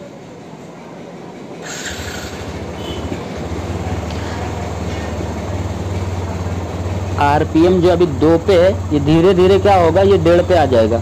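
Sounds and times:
motorcycle engine starting and idling: 0:01.6 - 0:11.0.

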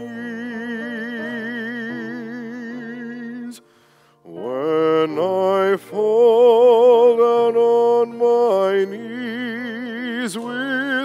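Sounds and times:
person singing a hymn with vibrato: 0:00.0 - 0:11.0.

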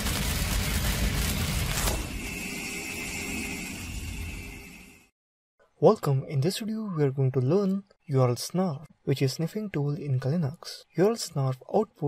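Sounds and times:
high ringing tone: 0:02.1 - 0:05.1.

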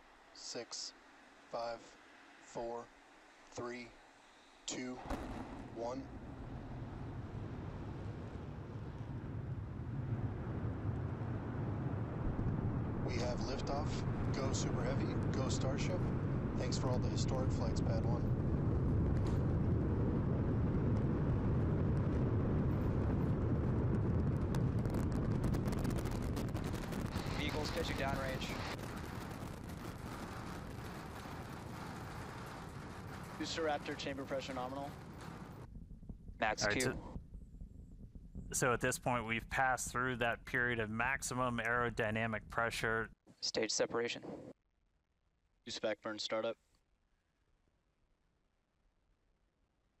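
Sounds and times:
rocket engines rumbling: 0:04.6 - 0:43.9.

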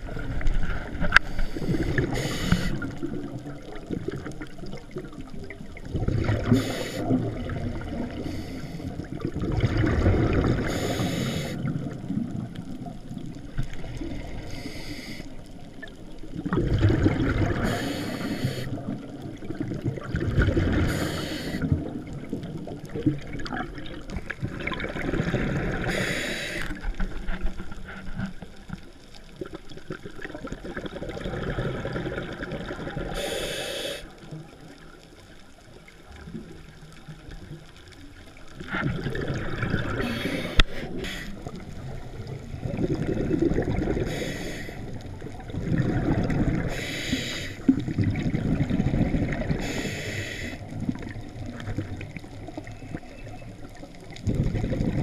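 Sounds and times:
exhaled bubbles: 0:00.0 - 0:28.0, 0:29.3 - 0:33.6, 0:36.1 - 0:55.0
diver inhaling through regulator: 0:01.2 - 0:03.0, 0:06.4 - 0:07.3, 0:08.1 - 0:09.0, 0:10.6 - 0:11.7, 0:14.2 - 0:15.4, 0:17.6 - 0:18.8, 0:20.7 - 0:21.7, 0:25.8 - 0:26.9, 0:33.1 - 0:34.2, 0:39.9 - 0:41.6, 0:43.9 - 0:44.9, 0:46.5 - 0:47.7, 0:49.5 - 0:50.7.

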